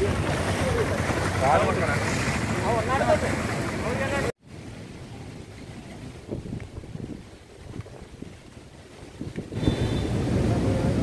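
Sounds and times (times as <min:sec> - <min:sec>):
waves breaking: 0:00.0 - 0:11.0
wind on microphone: 0:04.6 - 0:11.0.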